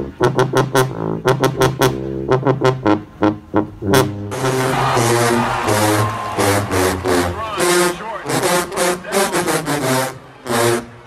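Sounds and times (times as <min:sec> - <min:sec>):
marching band brass: 0:00.0 - 0:11.0
sousaphones playing low notes: 0:00.0 - 0:11.0
voices: 0:07.0 - 0:09.8.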